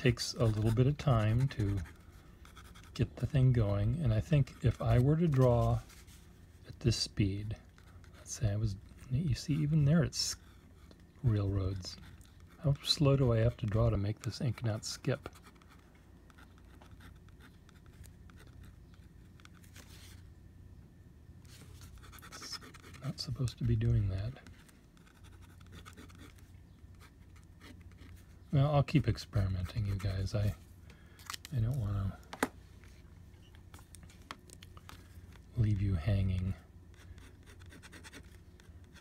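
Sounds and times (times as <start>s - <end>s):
low room hum: 0.0s - 39.0s
pen nib scratching on paper: 0.1s - 3.2s, 11.8s - 19.6s, 21.8s - 23.6s, 24.4s - 28.2s, 36.9s - 39.0s.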